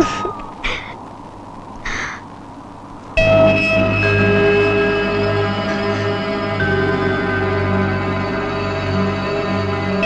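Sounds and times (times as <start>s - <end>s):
film score music with held chords: 0.0s - 10.0s.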